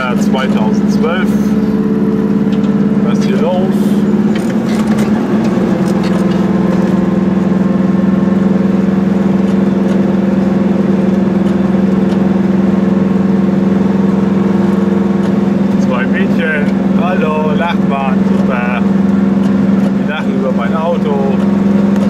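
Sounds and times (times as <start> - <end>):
road noise: 0.0 - 22.0
small two-stroke engine running: 0.0 - 22.0.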